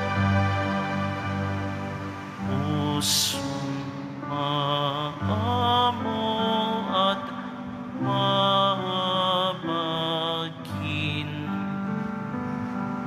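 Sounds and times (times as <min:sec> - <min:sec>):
slow sustained church music: 0:00.0 - 0:13.0.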